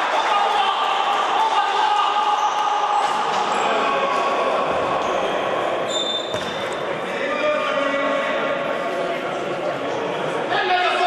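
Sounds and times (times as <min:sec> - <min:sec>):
players' voices echoing: 0:00.0 - 0:11.0
short high squeaks: 0:05.9 - 0:06.6
ball kicked and bouncing on floor: 0:06.3 - 0:06.8.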